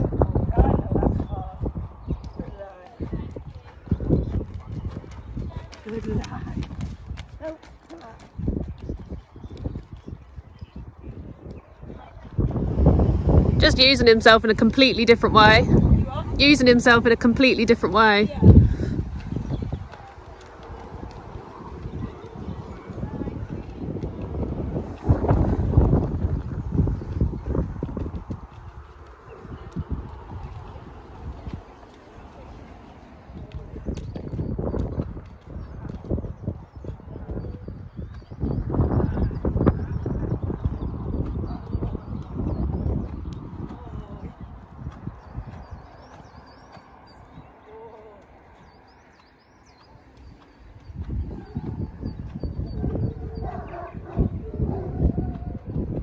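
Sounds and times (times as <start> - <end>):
horse hoofbeats trotting: 1.1 - 12.6, 13.6 - 56.0.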